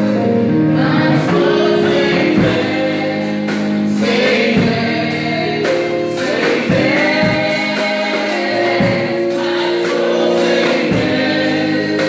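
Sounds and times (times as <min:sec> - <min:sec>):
choir backing singers: 0:00.0 - 0:12.0.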